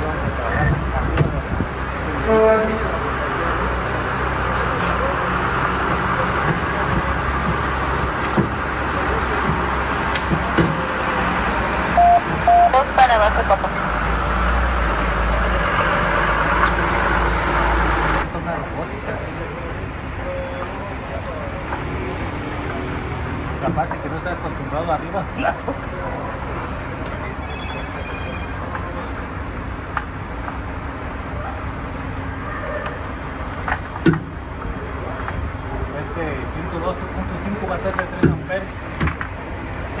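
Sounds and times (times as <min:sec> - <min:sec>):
short beeps: 0:12.0 - 0:12.9, 0:27.4 - 0:28.6.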